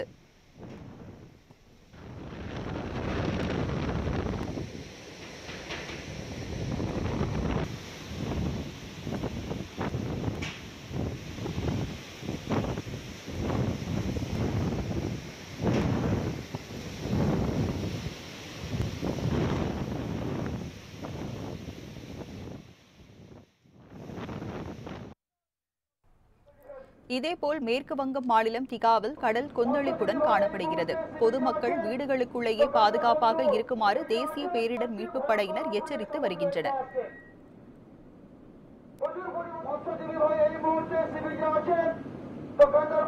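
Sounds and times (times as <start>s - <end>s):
wind buffeting microphone: 0.6s - 25.2s.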